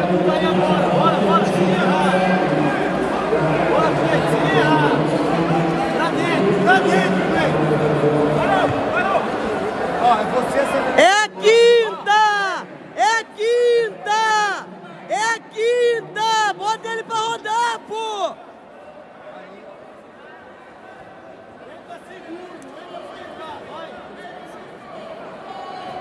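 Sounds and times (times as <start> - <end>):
crowd chatter: 0.0 - 26.0
person shouting loud calls: 11.0 - 18.4.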